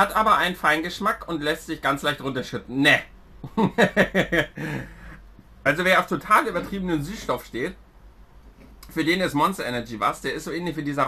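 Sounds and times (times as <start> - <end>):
man laughing: 3.4 - 5.3
breathy exhale: 4.6 - 5.2.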